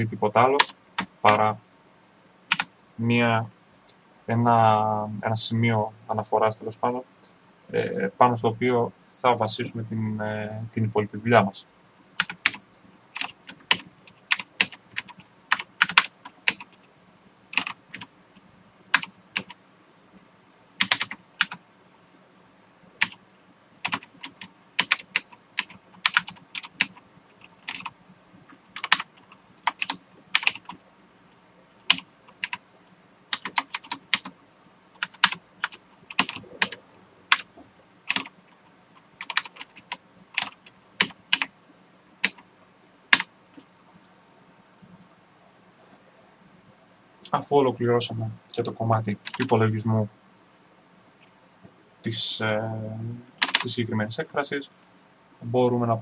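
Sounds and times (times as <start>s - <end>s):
typing on computer keyboard: 0.6s - 1.4s, 2.5s - 2.7s, 12.2s - 12.6s, 13.2s - 16.9s, 17.6s - 18.1s, 18.9s - 19.6s, 20.8s - 21.6s, 23.0s - 23.2s, 23.8s - 27.9s, 28.5s - 30.8s, 31.8s - 32.6s, 33.3s - 34.3s, 35.0s - 37.5s, 38.1s - 38.4s, 39.2s - 41.5s, 42.2s - 42.4s, 49.2s - 49.5s, 53.4s - 53.7s.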